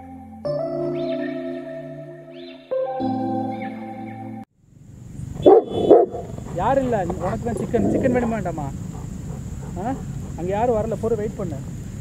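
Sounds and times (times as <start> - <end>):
dog barking: 5.4 - 10.5.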